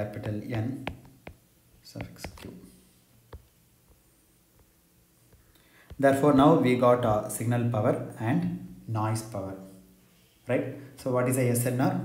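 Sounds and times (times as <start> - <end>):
stylus tapping on glass screen: 0.0 - 1.4, 2.0 - 2.5.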